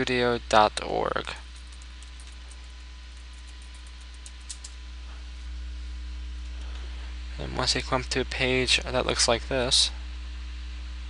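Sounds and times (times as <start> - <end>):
steady low hum: 0.0 - 11.0
computer keyboard typing: 1.5 - 4.8.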